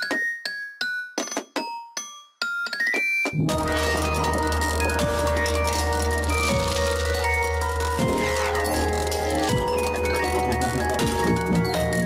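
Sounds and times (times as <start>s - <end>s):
high piano-like melody: 3.5s - 12.0s.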